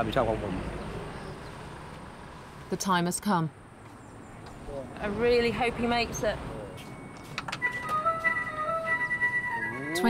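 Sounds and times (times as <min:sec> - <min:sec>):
electronic scale jingle: 0:07.0 - 0:10.0.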